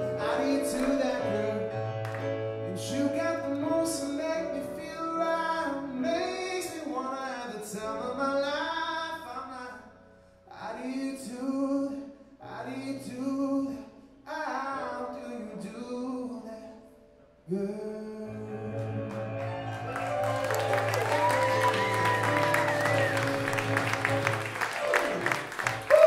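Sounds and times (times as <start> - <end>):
man singing: 0.0 - 1.9, 2.6 - 19.9
electric piano chords: 0.0 - 7.1, 16.9 - 26.0.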